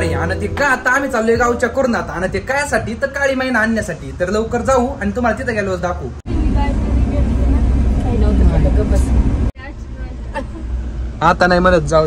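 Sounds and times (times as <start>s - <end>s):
vehicle engine and road rumble: 0.0s - 12.0s.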